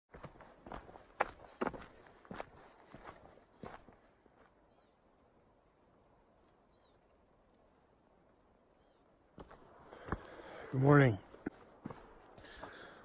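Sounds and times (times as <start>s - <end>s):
footsteps on dirt and rock: 0.1s - 4.6s, 9.4s - 13.0s.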